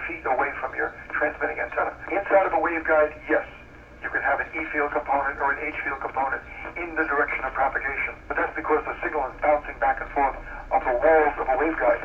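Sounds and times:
person talking radio-like: 0.0s - 12.0s.

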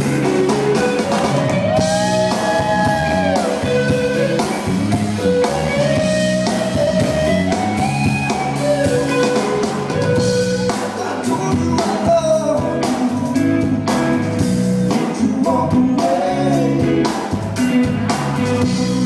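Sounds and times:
bass guitar: 0.0s - 19.0s
drum kit: 0.0s - 19.0s
electric guitar lead: 0.0s - 19.0s.

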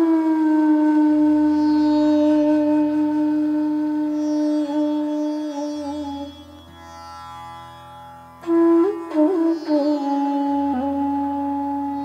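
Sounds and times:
bamboo flute sustained note: 0.0s - 7.2s, 8.4s - 12.0s.

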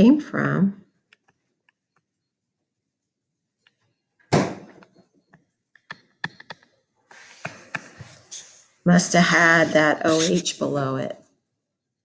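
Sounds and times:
stylus tapping and scratching tablet: 1.0s - 4.0s, 4.8s - 10.8s
thump: 4.3s - 4.8s.

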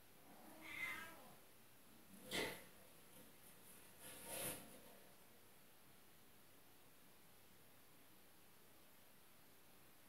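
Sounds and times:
cat meowing: 0.5s - 1.4s.

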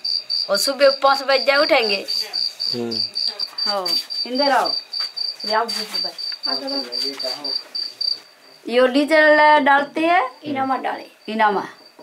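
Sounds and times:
cricket chirping: 0.0s - 12.0s.

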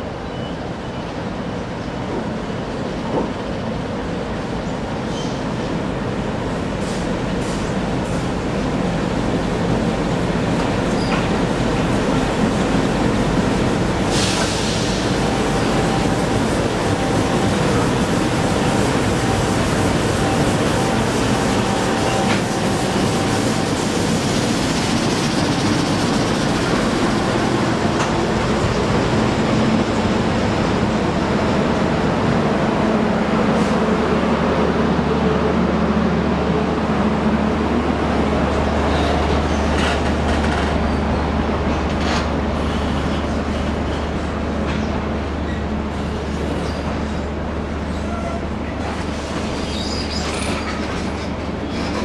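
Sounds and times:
diesel locomotive engine: 0.0s - 52.0s
rumble of train carriages: 0.0s - 52.0s.

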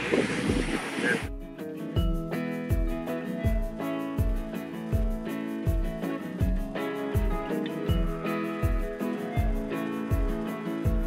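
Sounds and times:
wind noise on microphone: 0.0s - 1.4s
music with steady low beat: 0.0s - 11.0s.

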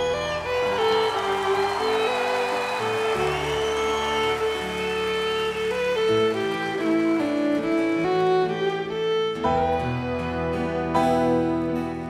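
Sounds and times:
fiddle playing long notes: 0.0s - 11.8s
live country band: 2.8s - 12.0s.

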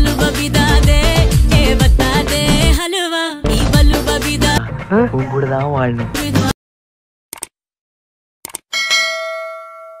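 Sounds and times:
quick clicks: 7.3s - 7.5s, 8.4s - 8.7s
notification bell ding: 8.8s - 10.0s.

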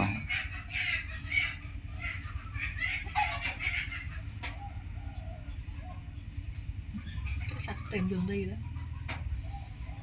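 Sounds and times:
birds calling: 0.0s - 10.0s.

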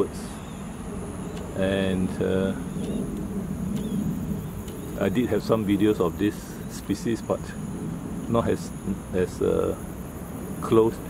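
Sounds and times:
distant traffic rumble: 0.0s - 11.0s
insect drone: 0.0s - 11.0s.

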